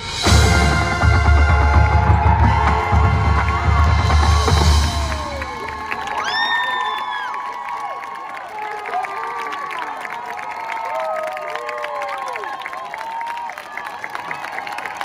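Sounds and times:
marching band chord: 0.0s - 6.0s
crowd cheering and whooping: 1.3s - 15.0s
loud high whoop: 4.7s - 15.0s.

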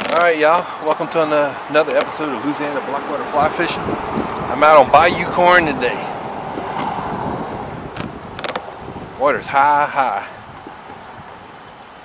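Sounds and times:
wind rushing over microphone: 1.6s - 12.0s.

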